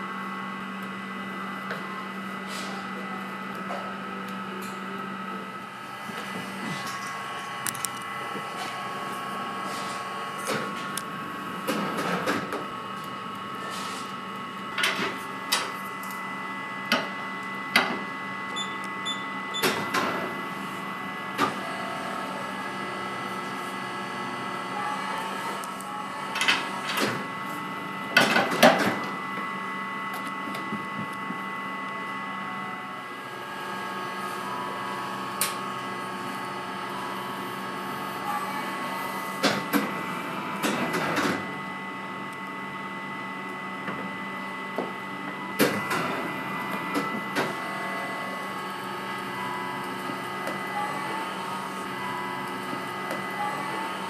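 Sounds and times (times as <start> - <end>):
machinery whir with high whine: 0.0 - 54.0.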